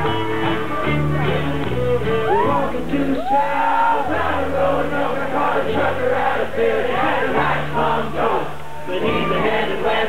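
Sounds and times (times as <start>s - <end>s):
bluegrass string band playing: 0.0s - 3.2s, 4.1s - 10.0s
bass holding low notes: 0.0s - 3.4s
voices singing along: 0.0s - 10.0s.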